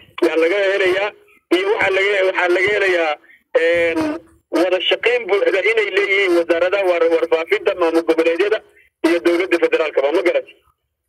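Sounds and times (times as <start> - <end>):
man talking: 0.0 - 10.7.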